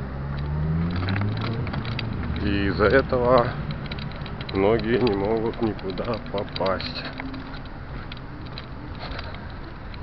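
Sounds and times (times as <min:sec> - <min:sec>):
faint clicks: 0:00.3 - 0:10.0.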